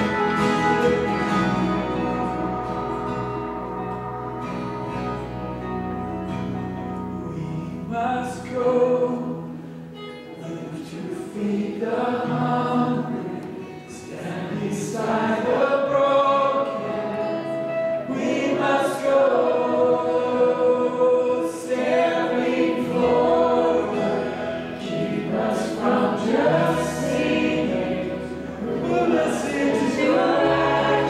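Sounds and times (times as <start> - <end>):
worship band playing: 0.0 - 9.4, 11.4 - 31.0
voices singing in choir: 10.4 - 31.0.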